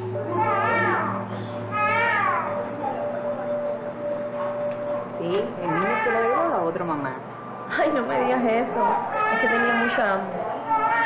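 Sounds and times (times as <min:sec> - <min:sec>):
quiet background music: 0:00.0 - 0:11.0
newborn baby crying: 0:00.3 - 0:02.6, 0:05.6 - 0:06.7, 0:08.1 - 0:11.0.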